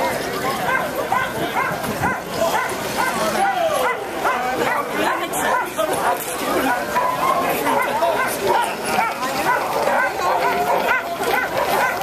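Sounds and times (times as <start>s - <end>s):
crowd voices: 0.0s - 12.0s
sled dogs yelping and barking: 0.5s - 12.0s.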